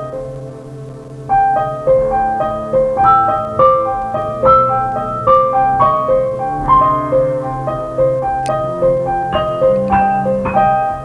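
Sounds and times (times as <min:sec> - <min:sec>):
piano broken-chord figure: 0:00.0 - 0:11.0.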